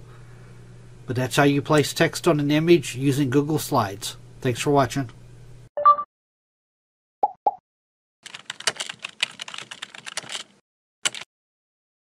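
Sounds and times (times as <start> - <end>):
keyboard typing clicks: 11.1 - 11.3.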